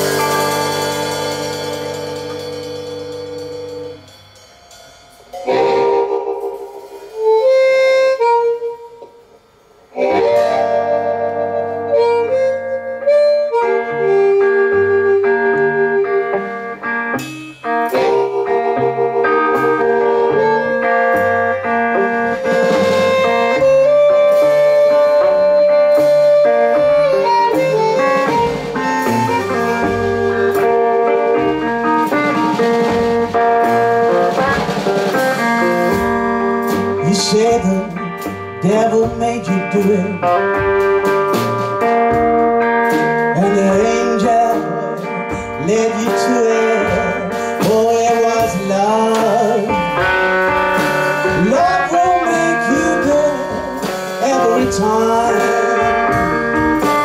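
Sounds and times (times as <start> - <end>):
blues electric guitar: 0.0 - 57.0
drum kit beat: 0.0 - 57.0.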